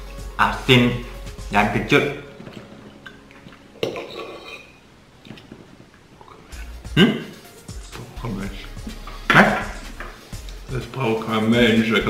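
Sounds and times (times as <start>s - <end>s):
metal fork clinking on plate: 3.8s - 4.8s.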